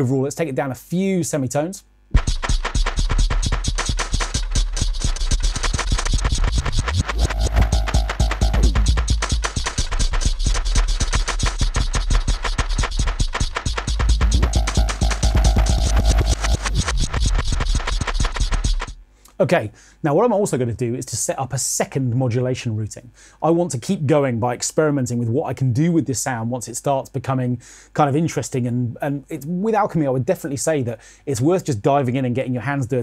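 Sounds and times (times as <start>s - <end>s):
dense stream of rapid clicks: 2.2s - 19.0s
deep bass: 4.3s - 19.0s.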